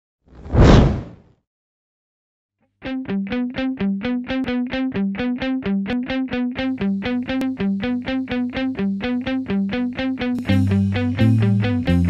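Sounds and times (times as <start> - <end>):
whoosh with deep low end: 0.4 - 1.2.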